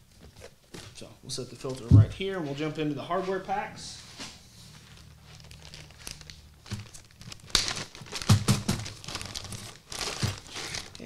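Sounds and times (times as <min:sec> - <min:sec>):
plastic bag crinkling: 0:04.8 - 0:11.0.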